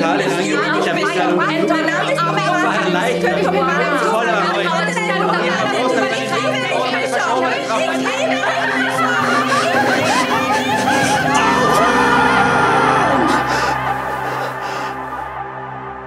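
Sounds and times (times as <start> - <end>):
overlapping voices talking: 8.9 - 12.5.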